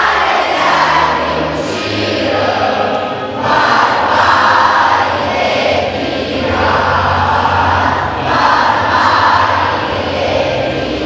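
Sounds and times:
children singing in unison: 0.0 - 11.0.

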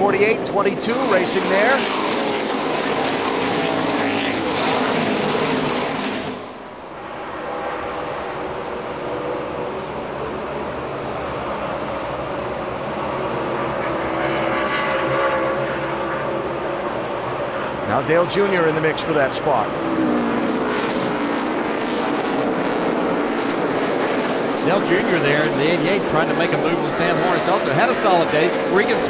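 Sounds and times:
race car engines passing: 0.0 - 29.0.

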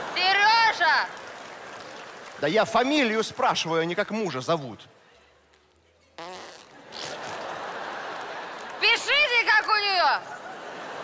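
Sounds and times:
woman blowing lip raspberry: 6.2 - 7.5.

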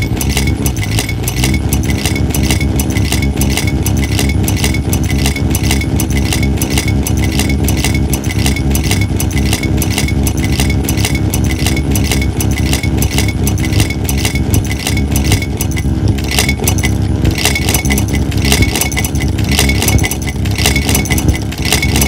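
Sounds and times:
fast pulse of clicks: 0.0 - 22.0
low synthesizer drone: 0.0 - 22.0.

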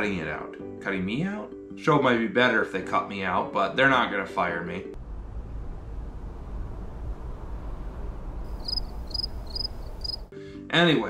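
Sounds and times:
low rumble: 5.0 - 10.0.

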